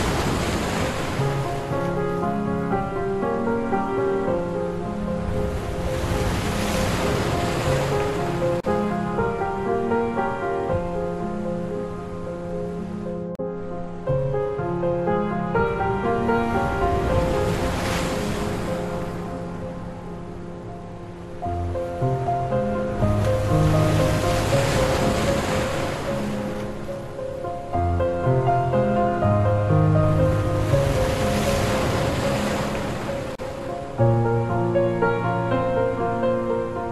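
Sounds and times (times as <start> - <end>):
surf washing: 0.0 - 13.1, 14.6 - 36.9
slow instrumental music: 1.0 - 36.9.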